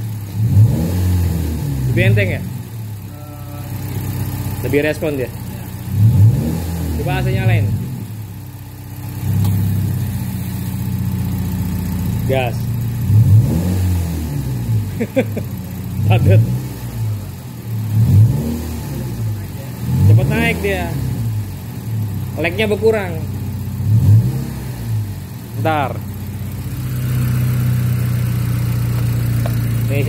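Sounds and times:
car engine idling: 0.0 - 30.0
engine throttle blip: 9.2 - 13.6.

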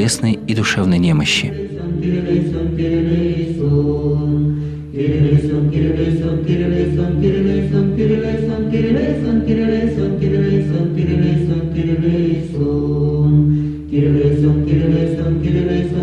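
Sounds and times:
choir chanting a cappella: 0.0 - 16.0.

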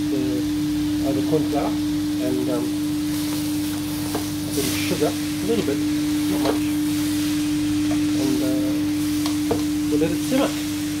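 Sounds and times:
meat sizzling in a pot: 0.0 - 11.0
steady hum tone: 0.0 - 11.0.

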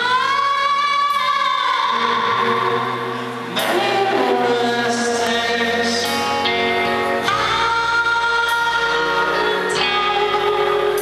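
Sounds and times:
electric guitar: 0.0 - 11.0.

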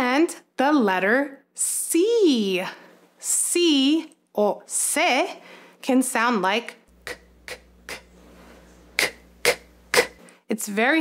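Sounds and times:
woman making breathy k sounds: 7.0 - 8.2, 8.9 - 10.3.

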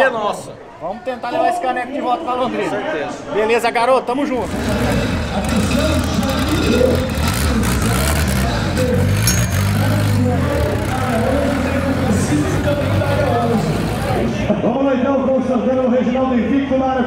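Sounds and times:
crowd voices: 0.0 - 17.0
car engine running at low revs: 4.4 - 14.5.

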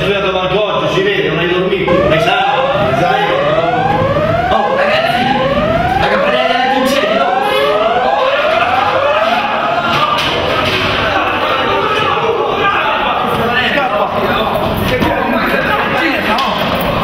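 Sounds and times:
evacuation alarm whooping: 1.9 - 10.2.

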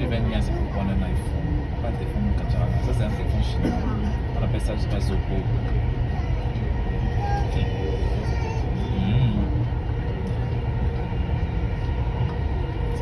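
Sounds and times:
metro train rumble from inside: 0.0 - 13.0.

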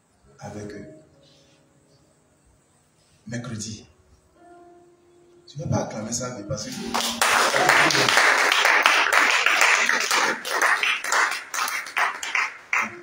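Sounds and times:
congregation applauding: 6.7 - 13.0.

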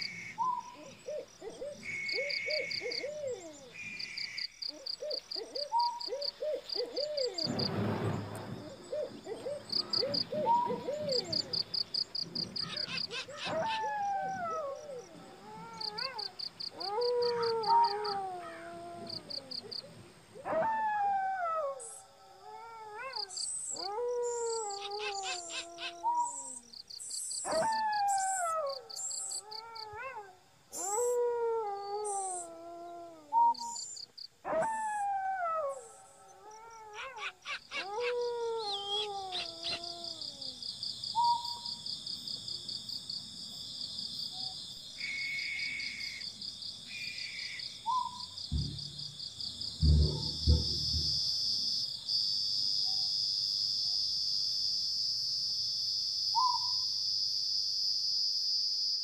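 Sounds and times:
animal howling: 12.5 - 26.6, 34.5 - 40.6, 49.8 - 51.2.

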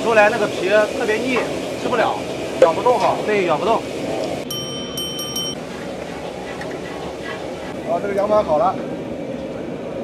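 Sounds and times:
street traffic: 0.0 - 10.0
high electronic chime: 4.5 - 5.6.

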